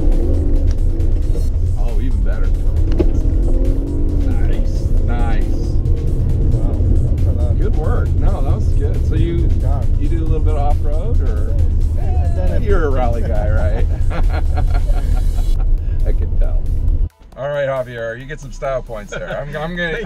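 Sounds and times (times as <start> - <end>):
background music: 0.0 - 20.0
engine and road rumble: 0.0 - 20.0
voices: 17.4 - 20.0.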